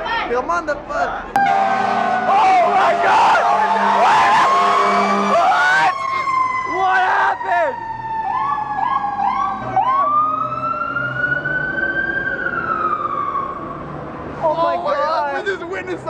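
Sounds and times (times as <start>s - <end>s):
fire engine siren wailing: 1.4s - 14.1s.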